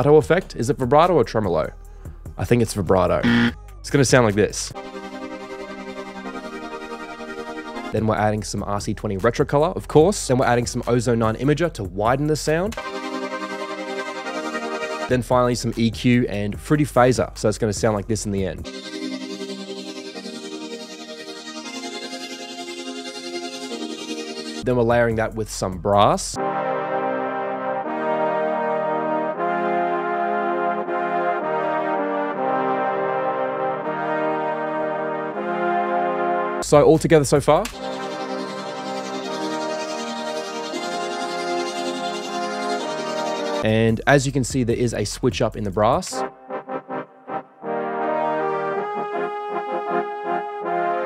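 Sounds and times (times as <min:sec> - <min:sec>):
brass section playing minor chords: 0:03.2 - 0:03.6, 0:04.7 - 0:08.0, 0:12.7 - 0:15.3, 0:18.6 - 0:24.7, 0:26.4 - 0:43.7, 0:46.0 - 0:51.0.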